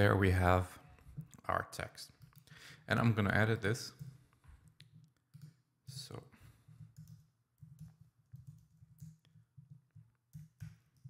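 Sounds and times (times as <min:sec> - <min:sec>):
computer mouse clicks: 0:04.0 - 0:05.6, 0:06.7 - 0:11.0.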